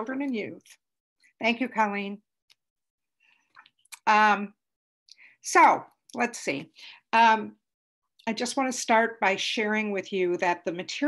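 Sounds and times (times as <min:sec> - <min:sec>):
woman speaking: 0:00.0 - 0:00.8, 0:01.4 - 0:02.3, 0:03.9 - 0:04.6, 0:05.4 - 0:07.6, 0:08.2 - 0:11.0.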